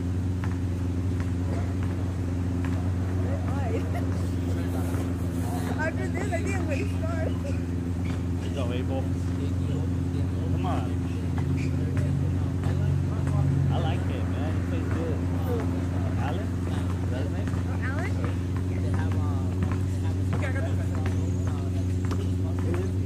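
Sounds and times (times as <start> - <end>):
low mechanical hum: 0.0 - 23.0
distant players shouting: 1.1 - 23.0.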